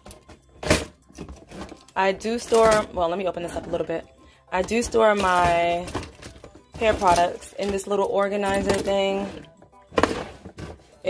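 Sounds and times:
plastic combs clattering: 0:00.0 - 0:11.0.

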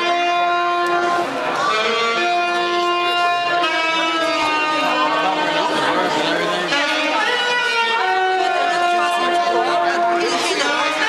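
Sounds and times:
crowd chatter: 0:00.0 - 0:11.0
saxophone playing long notes: 0:00.0 - 0:11.0.

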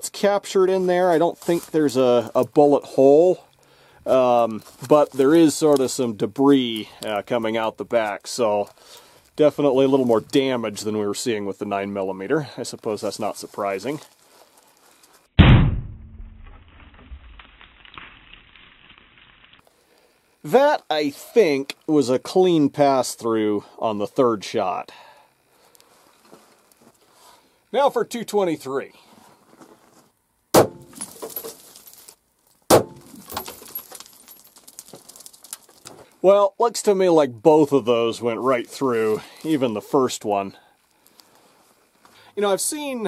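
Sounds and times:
gunshot: 0:15.4 - 0:17.3, 0:30.6 - 0:30.9, 0:32.7 - 0:33.1.

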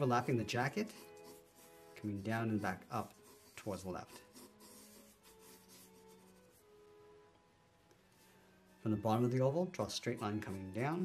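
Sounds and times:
pencil scratching on paper: 0:00.0 - 0:06.7, 0:09.8 - 0:11.0
soft background music: 0:00.0 - 0:11.0.

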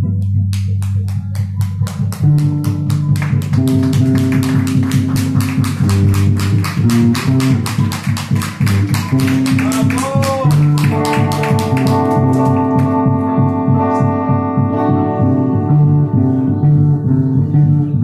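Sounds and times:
live band playing: 0:01.8 - 0:17.3.

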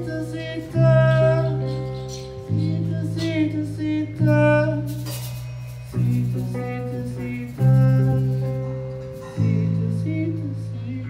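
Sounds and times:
acoustic guitar chords: 0:00.0 - 0:11.0
person singing: 0:00.0 - 0:11.0.

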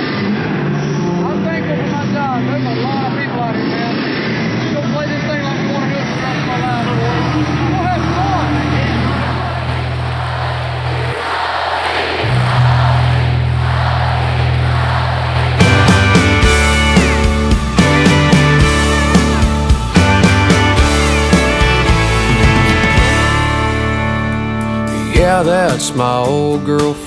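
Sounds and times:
group of people talking: 0:01.3 - 0:16.3
country band with guitar: 0:15.5 - 0:27.0.

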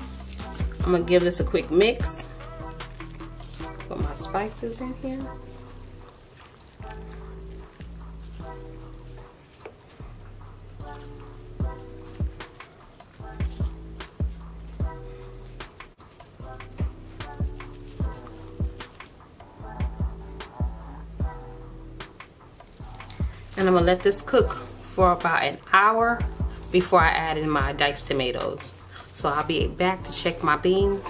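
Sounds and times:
background music with sustained chords: 0:00.0 - 0:31.0.

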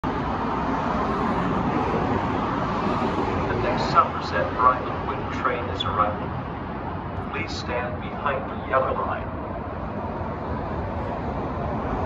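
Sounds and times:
road traffic rushing: 0:00.0 - 0:12.0
loudspeaker announcement: 0:03.5 - 0:06.3, 0:07.3 - 0:09.4.

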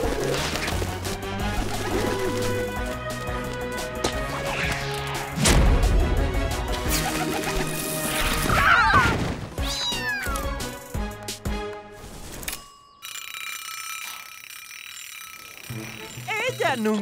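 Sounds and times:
cartoon cat meowing: 0:08.5 - 0:10.6.

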